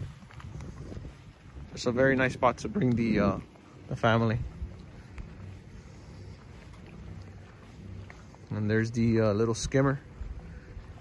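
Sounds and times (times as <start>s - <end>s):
faint low outdoor hum: 0.0s - 11.0s.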